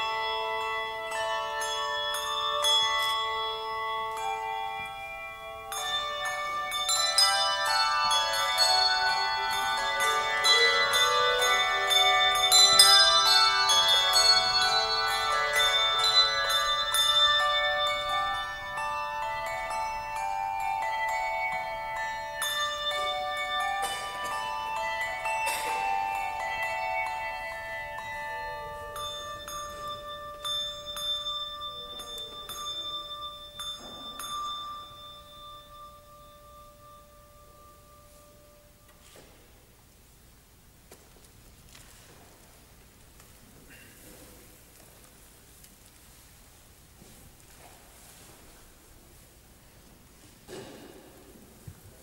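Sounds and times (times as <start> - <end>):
handbell choir playing: 0.0 - 39.3.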